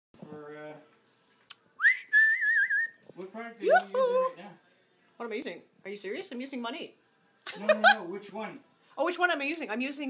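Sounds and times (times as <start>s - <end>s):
woman whistling: 1.8s - 3.0s.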